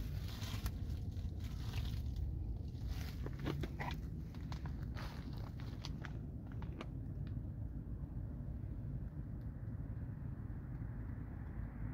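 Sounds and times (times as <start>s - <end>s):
footsteps crunching on dry leaves: 0.0s - 6.2s
steady low rumble: 0.0s - 11.9s.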